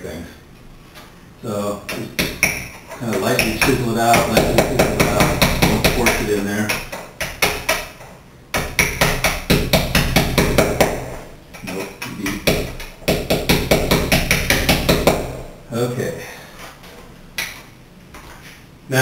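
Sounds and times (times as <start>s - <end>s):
hammer tapping a chisel: 1.9s - 15.3s.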